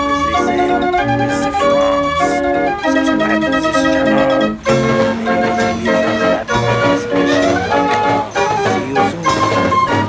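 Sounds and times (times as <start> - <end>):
band organ playing pipes: 0.0 - 10.0.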